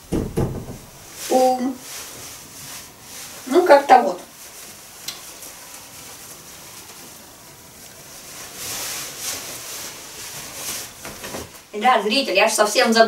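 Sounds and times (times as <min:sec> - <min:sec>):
clothing rustling: 0:00.0 - 0:13.0.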